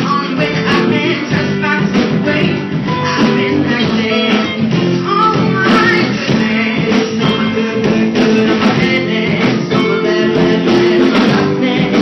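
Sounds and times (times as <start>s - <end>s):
electric guitar: 0.0s - 12.0s
live band playing: 0.0s - 12.0s.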